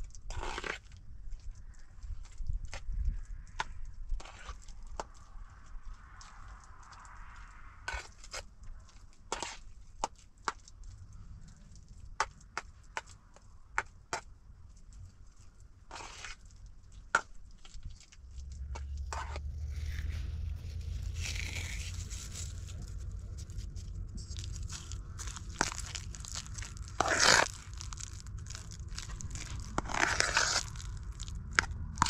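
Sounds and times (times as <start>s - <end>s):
low rumble: 10.7s - 12.8s, 18.0s - 32.0s.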